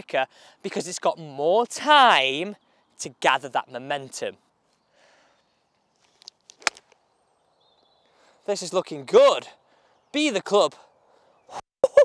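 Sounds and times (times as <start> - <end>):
golf club striking ball: 6.5 - 6.9.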